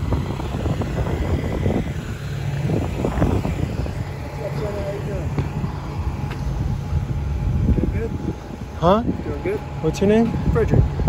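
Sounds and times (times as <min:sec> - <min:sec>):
low rumble of passing traffic: 0:00.0 - 0:11.0
wind buffeting microphone: 0:00.0 - 0:11.0.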